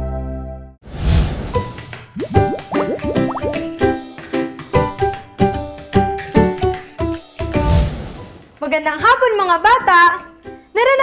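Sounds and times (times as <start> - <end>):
rising pitch-sweep sound effects: 2.2 - 3.6.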